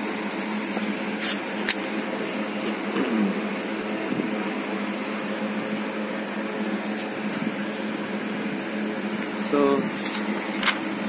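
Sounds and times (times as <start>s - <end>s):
mechanical hum with whirring: 0.0s - 11.0s.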